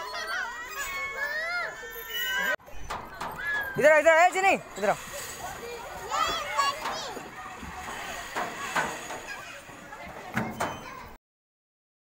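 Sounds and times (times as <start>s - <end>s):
children and adults talking: 0.0s - 11.2s.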